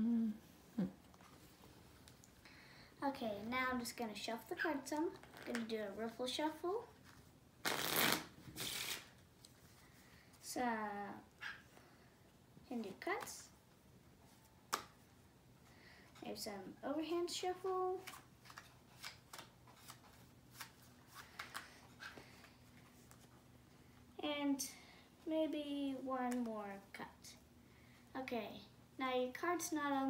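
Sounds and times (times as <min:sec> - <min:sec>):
playing cards riffle-shuffled: 0:07.0 - 0:09.7, 0:18.0 - 0:23.3.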